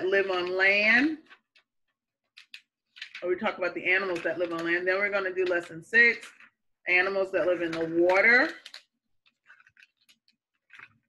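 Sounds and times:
woman speaking: 0:00.0 - 0:01.3, 0:03.2 - 0:08.6.

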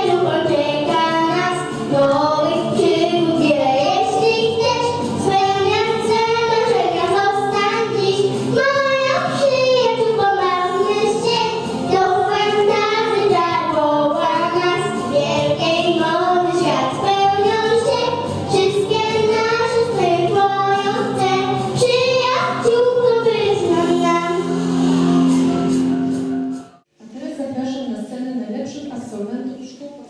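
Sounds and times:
girls singing into microphones: 0:00.0 - 0:25.3.

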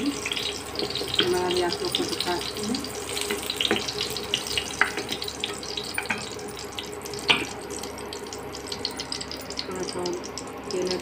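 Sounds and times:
hot oil sizzling in a frying pan: 0:00.0 - 0:11.0.

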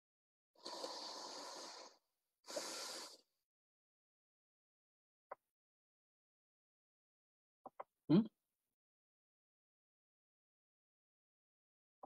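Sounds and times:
person breathing close: 0:00.6 - 0:03.2.

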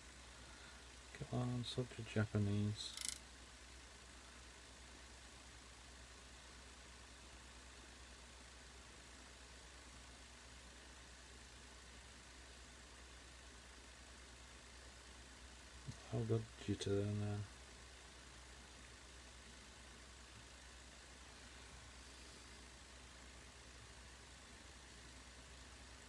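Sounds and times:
faint low hum and hiss: 0:00.0 - 0:26.0.

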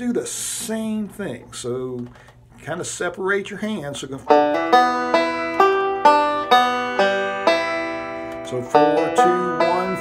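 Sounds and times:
banjo picked slowly: 0:04.3 - 0:10.0.

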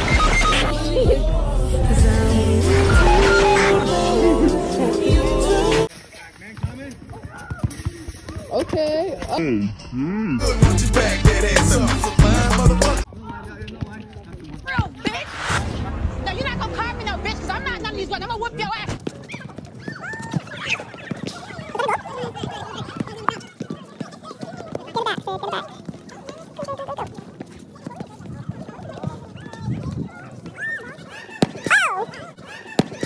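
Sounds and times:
squeaky sped-up voices calling: 0:00.0 - 0:01.1, 0:02.6 - 0:05.7.

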